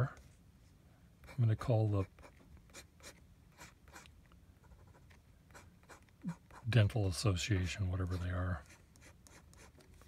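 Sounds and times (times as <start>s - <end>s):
pen nib scratching paper: 2.0s - 6.8s, 8.0s - 10.0s.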